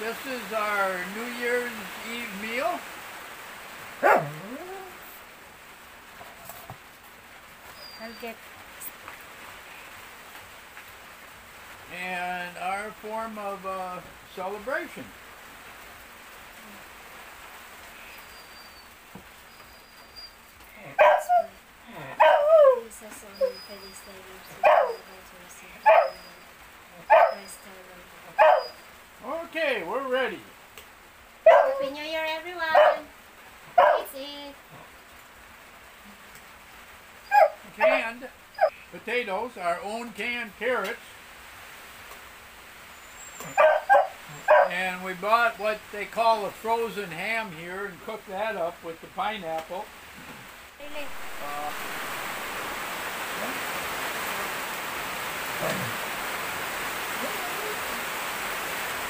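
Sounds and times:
dog barking: 4.0 - 4.6, 21.0 - 21.6, 22.2 - 22.8, 24.5 - 25.1, 25.8 - 26.2, 27.0 - 27.5, 28.3 - 28.8, 31.4 - 32.0, 32.7 - 33.1, 33.7 - 34.1, 37.3 - 38.8, 43.4 - 44.8.

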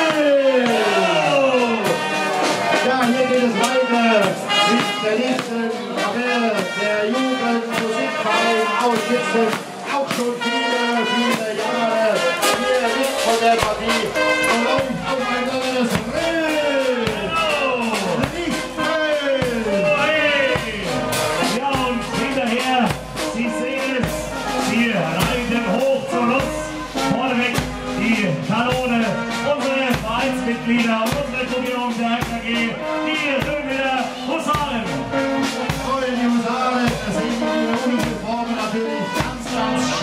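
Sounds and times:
marching band brass and clarinets: 0.0 - 40.0
steady bass drum beat: 0.0 - 40.0.

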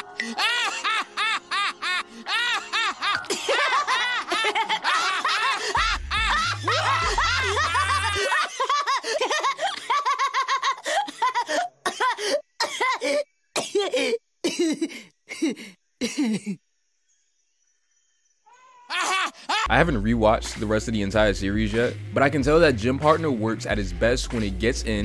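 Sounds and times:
cartoon characters laughing: 0.2 - 12.4, 18.8 - 19.7.

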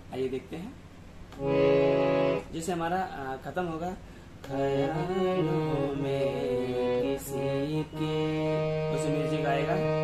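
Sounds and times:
harmonium melody: 1.4 - 3.0, 4.4 - 10.0.

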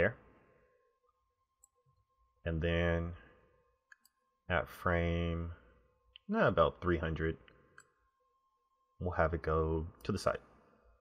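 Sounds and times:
faint high hum: 0.0 - 11.0.

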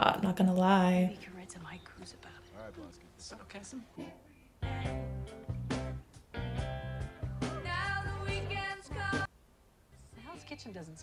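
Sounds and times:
quiet tv dialogue: 0.0 - 11.0.

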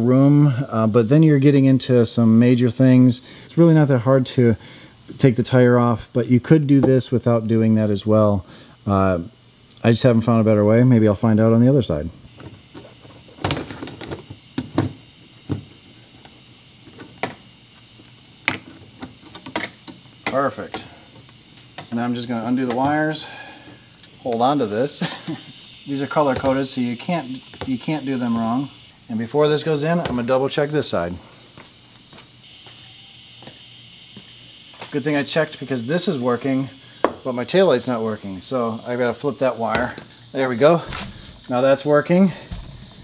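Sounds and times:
faint high-pitched whine: 0.0 - 43.0
footsteps on concrete: 27.4 - 27.9, 31.2 - 32.8, 33.4 - 35.0.

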